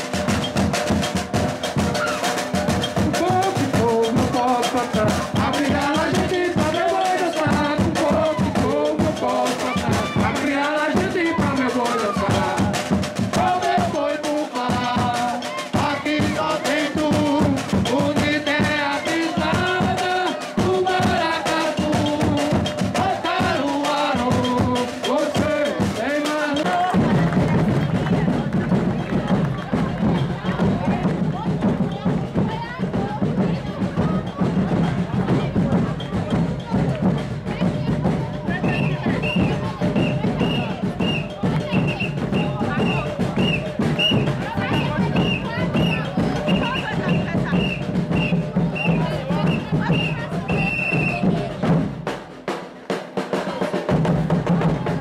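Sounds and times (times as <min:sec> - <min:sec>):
bass and snare drums beat: 0:00.0 - 0:55.0
man singing: 0:03.0 - 0:27.1.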